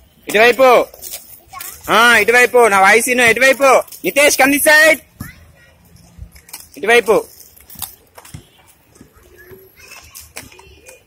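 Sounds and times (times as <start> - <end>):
roller skate wheels on concrete: 0.0 - 11.0
faint voices: 0.6 - 11.0.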